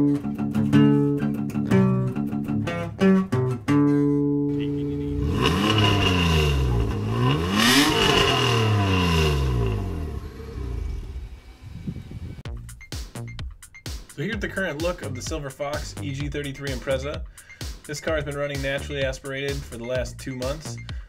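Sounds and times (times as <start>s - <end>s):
car engine revving: 4.5s - 12.5s
intro music: 4.5s - 21.0s.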